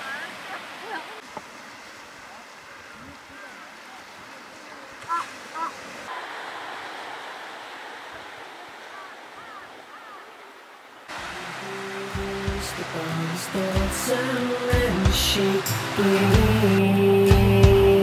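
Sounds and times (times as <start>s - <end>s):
surf washing onto rocky shore: 0.0s - 18.0s
background music: 11.3s - 18.0s.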